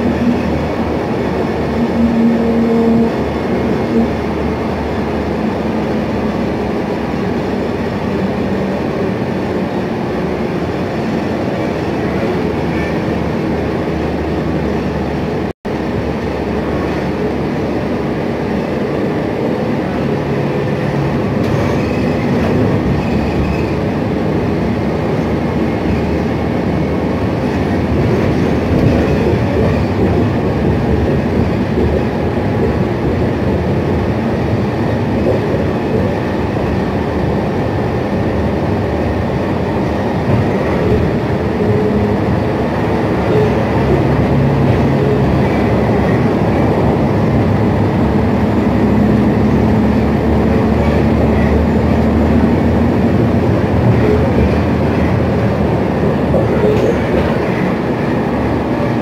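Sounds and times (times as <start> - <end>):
bus engine drone: 0.0 - 59.0
bus road rumble: 0.0 - 59.0.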